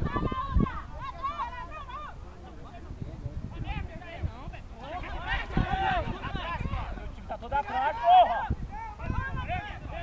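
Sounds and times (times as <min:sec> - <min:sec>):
people shouting and calling out: 0:00.0 - 0:10.0.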